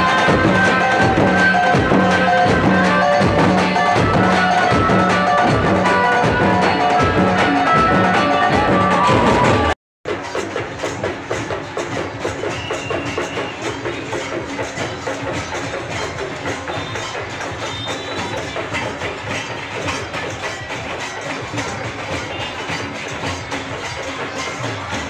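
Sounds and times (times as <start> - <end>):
marching drums: 0.0 - 25.0.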